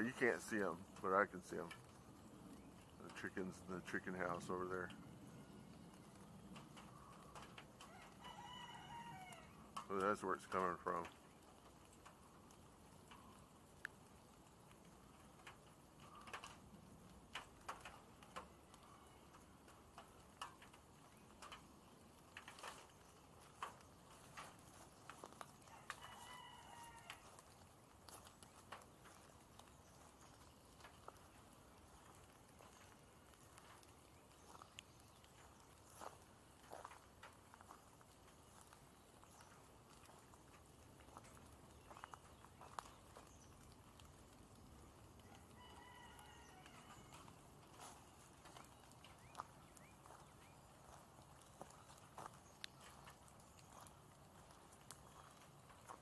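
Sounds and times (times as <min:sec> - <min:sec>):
faint ticks and clicks: 0:00.0 - 0:56.0.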